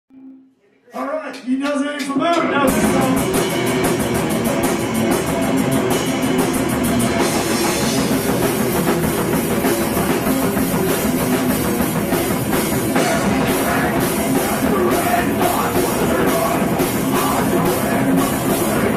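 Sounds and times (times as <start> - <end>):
live rock band playing: 2.2 - 18.9
fast cymbal strikes: 2.7 - 18.9.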